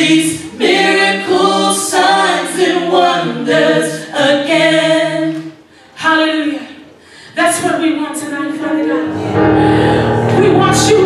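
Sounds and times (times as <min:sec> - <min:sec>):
vocal group singing a cappella: 0:00.0 - 0:06.7, 0:08.7 - 0:11.0.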